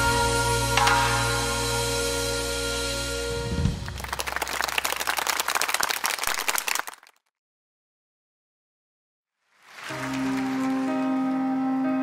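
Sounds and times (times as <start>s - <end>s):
sustained music chord: 0.0s - 3.9s, 9.9s - 12.0s
audience applause: 3.7s - 7.2s, 9.6s - 11.2s.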